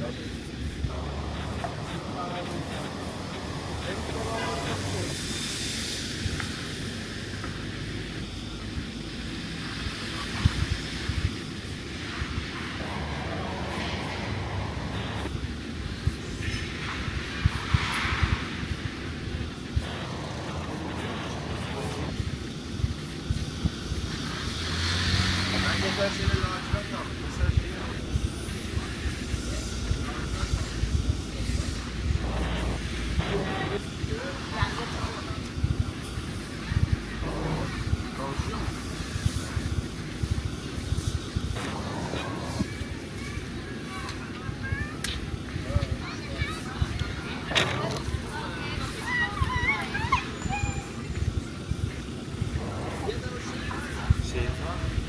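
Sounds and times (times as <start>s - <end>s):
passers-by talking: 0.0s - 55.0s
traffic rumble: 0.0s - 55.0s.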